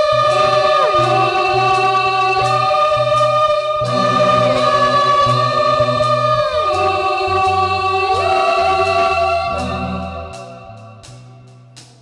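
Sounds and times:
sustained keyboard chords: 0.0 - 11.8
pulsing bass line: 0.0 - 12.0.

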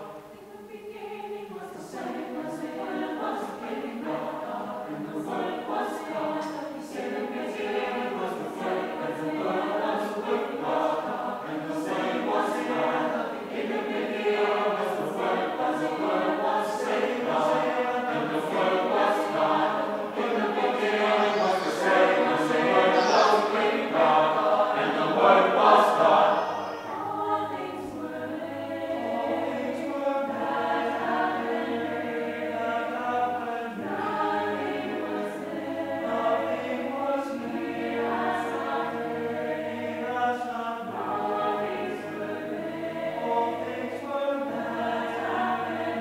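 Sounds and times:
choir singing unaccompanied: 0.0 - 46.0.

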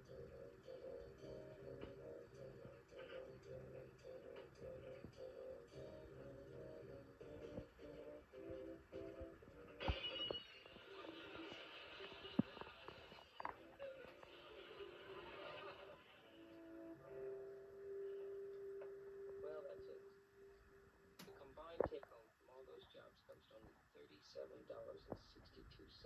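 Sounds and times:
sitcom music through tv speaker: 0.0 - 26.0.

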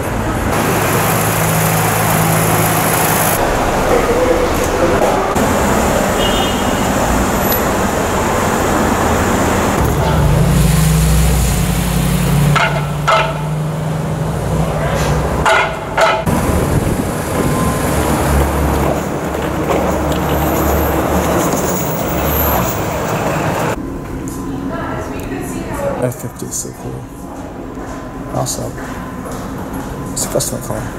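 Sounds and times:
low engine drone: 0.0 - 30.9
street traffic: 0.0 - 30.9.

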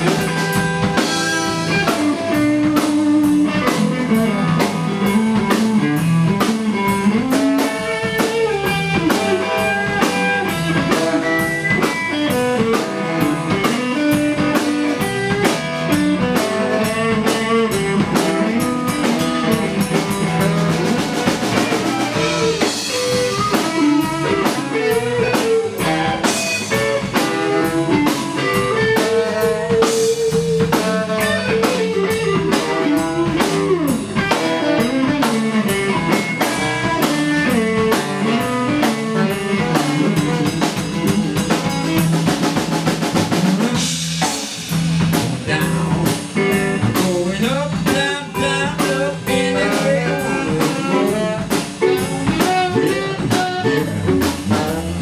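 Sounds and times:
drum kit: 0.0 - 55.0
electric guitars playing: 0.0 - 55.0.

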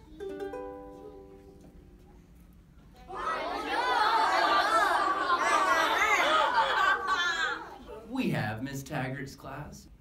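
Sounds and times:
young children chattering: 3.0 - 8.2.

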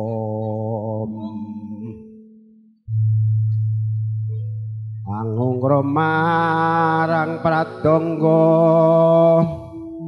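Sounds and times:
person singing: 0.0 - 2.4, 5.0 - 10.0.

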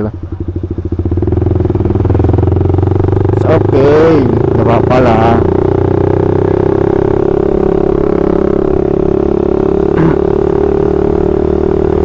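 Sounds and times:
motorcycle engine buzzing drone: 0.0 - 12.0.

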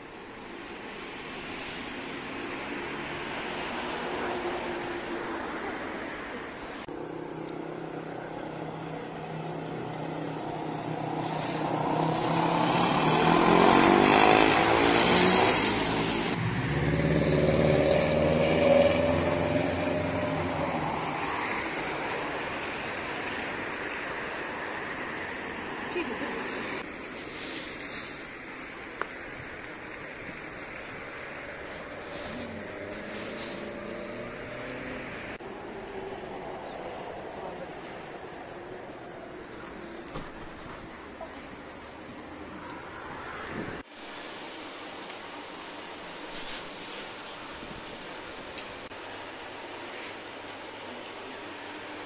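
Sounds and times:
street traffic: 0.0 - 52.0
quad bike engines revving past: 8.6 - 22.4, 31.8 - 36.1.

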